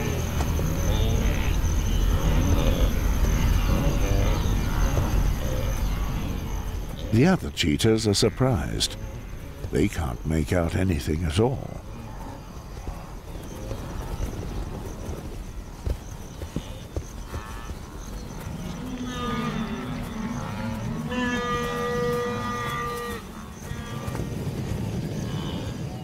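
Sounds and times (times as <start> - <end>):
wildebeest grunting and lowing: 0.0 - 24.4.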